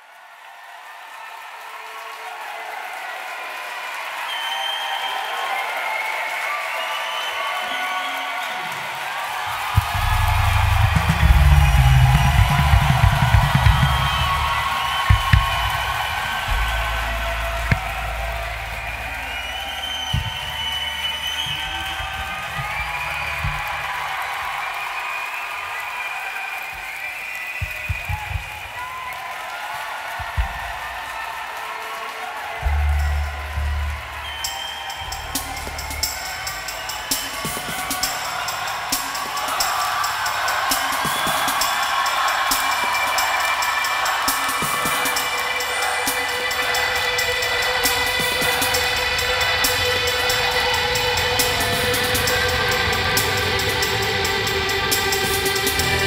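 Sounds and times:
crowd cheering and whistling: 0.0 - 56.0
drum thuds: 9.7 - 19.0, 21.5 - 24.2, 27.6 - 28.7, 30.2 - 31.1
deep bass booms: 9.8 - 15.8, 16.4 - 20.3, 32.6 - 34.2.

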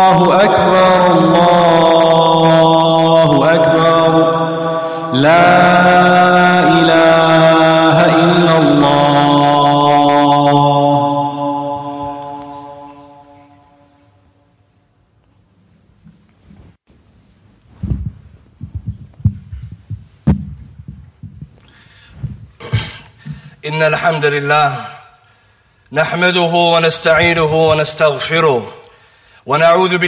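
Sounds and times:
man chanting call to prayer: 0.0 - 13.8, 23.6 - 25.2, 25.9 - 30.0.

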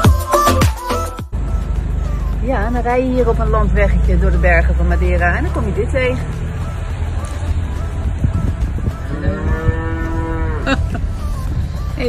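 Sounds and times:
car rumble: 1.3 - 12.0
calf mooing: 9.0 - 10.8.

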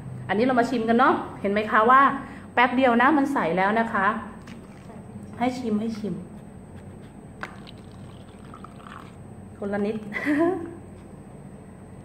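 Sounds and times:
drink pouring into plastic cup: 4.4 - 5.0, 7.4 - 9.2.

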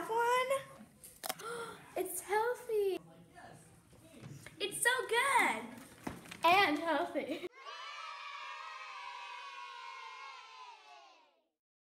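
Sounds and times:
crowd cheering: 7.5 - 11.5.

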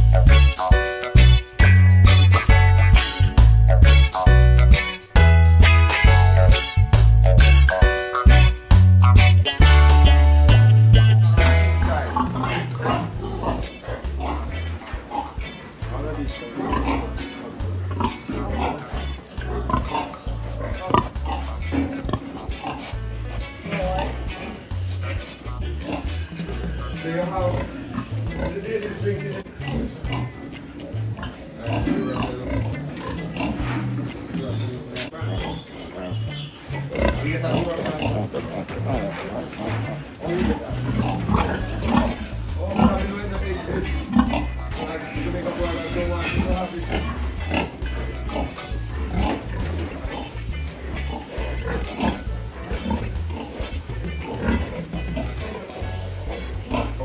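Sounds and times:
piglets grunting and squealing: 0.0 - 5.0, 5.6 - 57.0
music with pulsing bass beat: 0.0 - 12.1.

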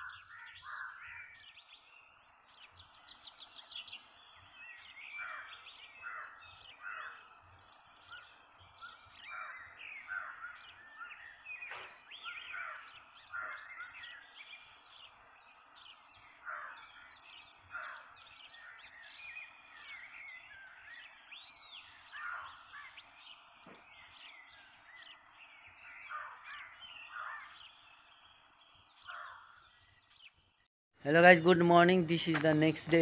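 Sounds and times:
birds chirping and calling: 0.0 - 33.0.

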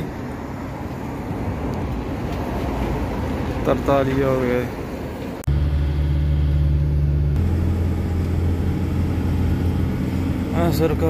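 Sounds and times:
truck diesel engine droning: 5.4 - 11.0.

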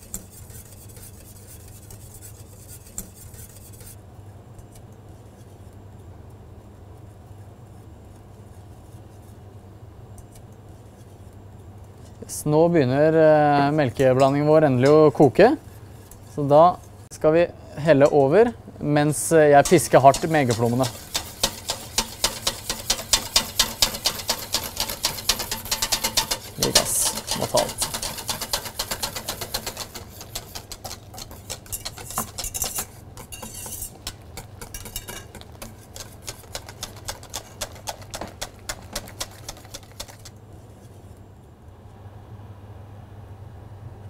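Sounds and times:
whisk beating in steel bowl: 0.0 - 4.0, 19.2 - 40.4.

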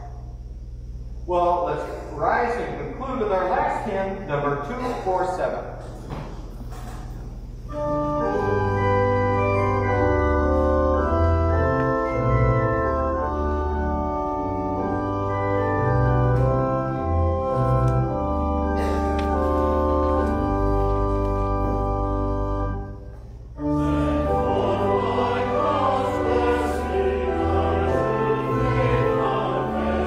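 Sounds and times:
church organ playing hymn: 7.5 - 30.0.

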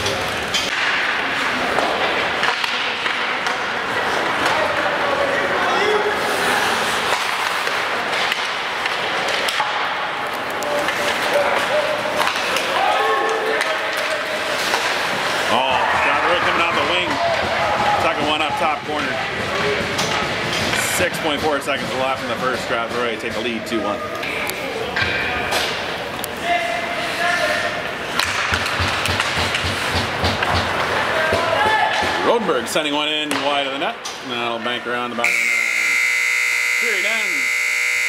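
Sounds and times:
hockey sticks and puck clacking: 0.0 - 34.2
people calling out: 35.2 - 38.0.

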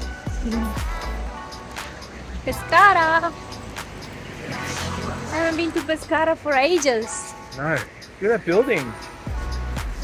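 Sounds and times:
car passing by: 1.6 - 7.9.

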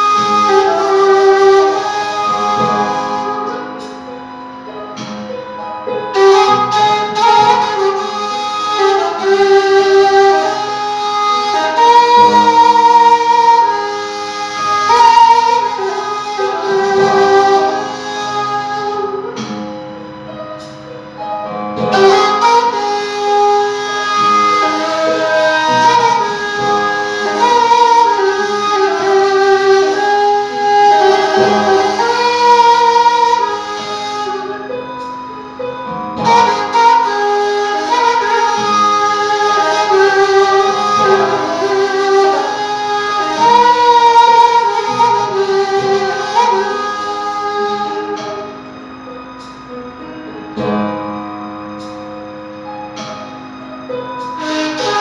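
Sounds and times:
reed flute melody: 0.0 - 55.0.

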